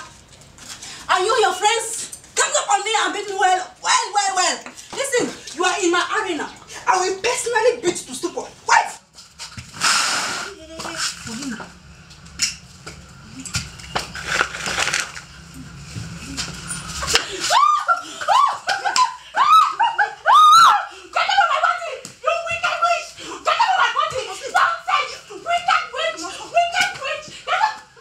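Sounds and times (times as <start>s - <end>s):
women shouting and yelping: 1.1s - 9.0s, 16.4s - 28.0s
woman's high-pitched cries: 17.3s - 28.0s.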